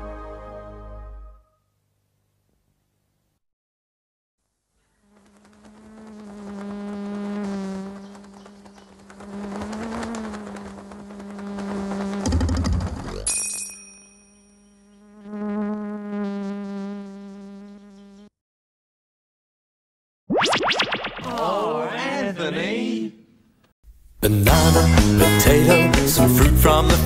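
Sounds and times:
cartoon insect buzzing: 5.0 - 13.3, 14.6 - 18.3
bright ringing ding: 13.3 - 14.8.

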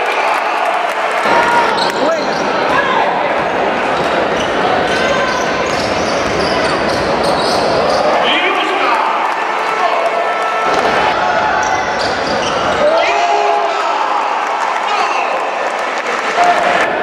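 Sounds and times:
murmur of crowd voices: 0.0 - 17.0
basketball bouncing on court: 5.2 - 7.8.

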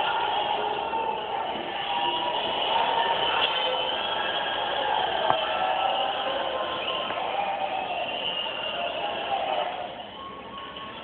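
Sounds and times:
television broadcast noise: 0.0 - 11.0.

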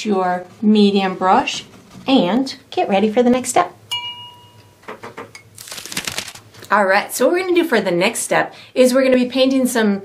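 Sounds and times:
ringing ding: 3.9 - 4.8
rustling: 5.6 - 6.7.

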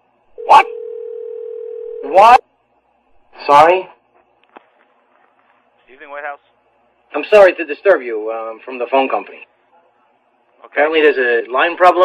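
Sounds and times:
steady telephone tone: 0.4 - 2.2.

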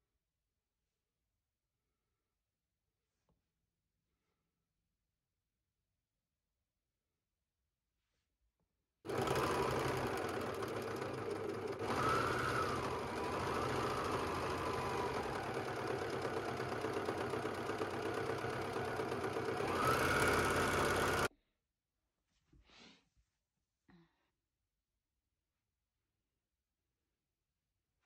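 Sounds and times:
overlock sewing machine running: 9.1 - 21.3.

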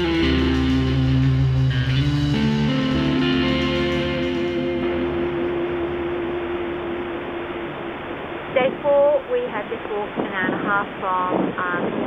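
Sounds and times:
guitar music: 0.0 - 10.0
wind on microphone: 4.9 - 12.0.

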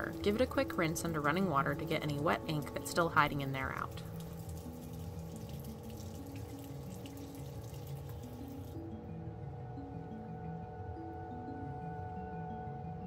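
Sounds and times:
faucet water splashing into sink: 0.0 - 8.8.

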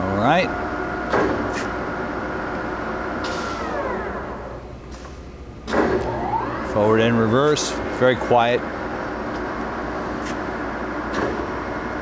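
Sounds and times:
lathe spindle whine: 6.0 - 12.0.

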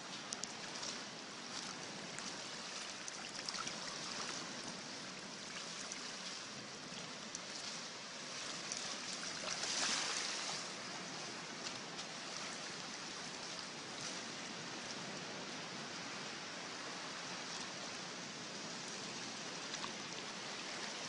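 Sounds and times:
flowing river water: 0.0 - 21.0
faint ticks: 0.1 - 1.0, 7.2 - 7.5.

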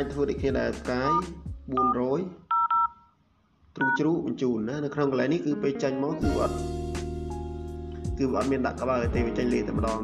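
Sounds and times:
dual-tone keypad beeps: 1.0 - 3.0, 3.8 - 4.0.

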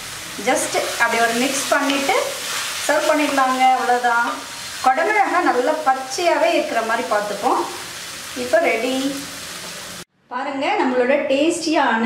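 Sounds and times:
curry sizzling in a pan: 0.0 - 10.1.

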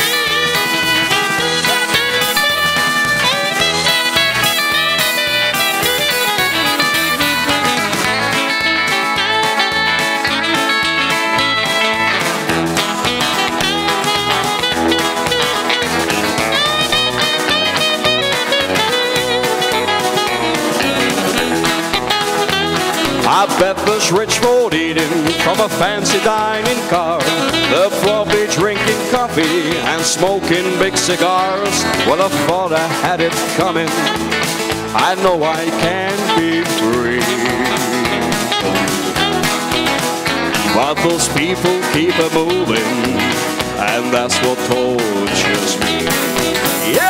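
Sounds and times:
saxophone solo: 0.0 - 23.4, 27.2 - 27.9, 36.3 - 40.6
person singing: 0.0 - 39.8, 40.6 - 47.0
live band playing: 0.0 - 47.0.

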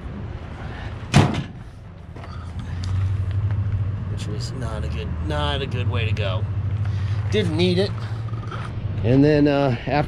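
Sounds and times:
low engine hum: 0.0 - 10.0
loud slam: 1.1 - 1.6.

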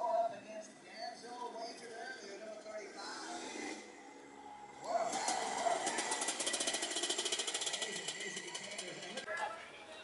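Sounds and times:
two-stroke kart engine: 3.4 - 9.4.

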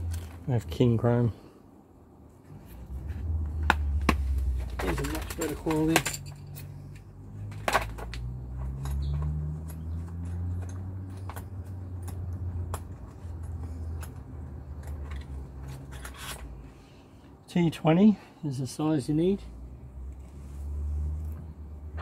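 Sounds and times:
metal keys clicking and rattling: 4.9 - 6.8.

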